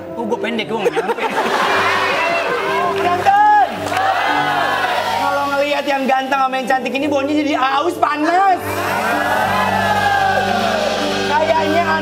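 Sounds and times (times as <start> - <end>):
background music: 0.0 - 12.0
audience calling out ooh: 1.7 - 5.6, 8.7 - 11.3.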